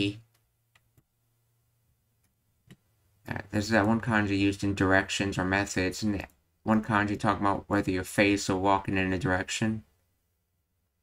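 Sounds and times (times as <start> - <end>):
person speaking: 3.2 - 9.9.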